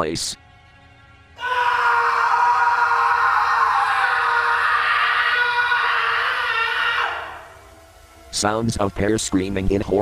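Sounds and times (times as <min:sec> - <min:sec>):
distorted scream: 0:01.4 - 0:08.3.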